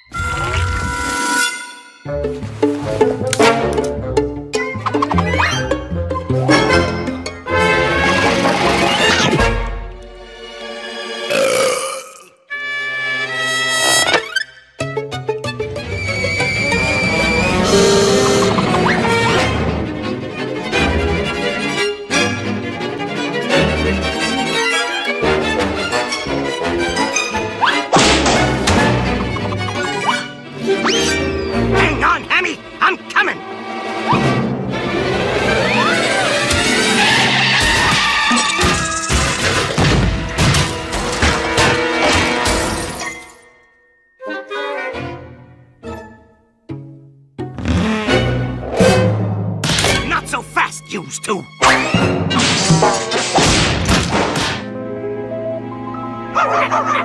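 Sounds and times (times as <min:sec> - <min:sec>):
fast cartoon music: 0:02.1 - 0:09.6, 0:14.8 - 0:23.2, 0:24.2 - 0:36.9, 0:47.8 - 0:52.7
cartoon burp: 0:11.3 - 0:12.4
whistle-like pitch glides: 0:15.9 - 0:18.9
calm background music: 0:54.6 - 0:57.0.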